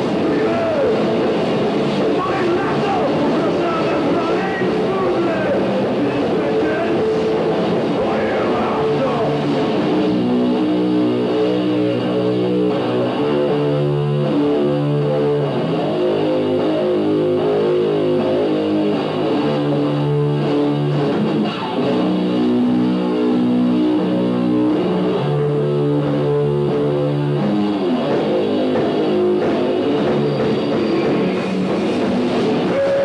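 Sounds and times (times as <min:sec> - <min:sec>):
bass guitar: 0:00.0 - 0:33.0
electric guitar held notes: 0:00.0 - 0:33.0.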